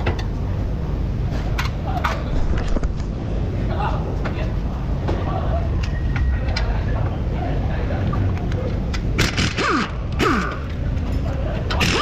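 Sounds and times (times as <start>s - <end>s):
impact wrench hammering: 9.2s - 10.8s, 11.7s - 12.0s.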